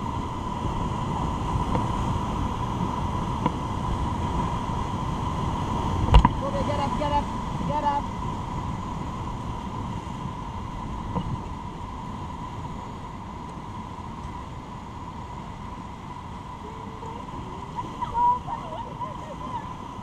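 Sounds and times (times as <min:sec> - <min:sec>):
rushing whitewater: 0:00.0 - 0:20.0.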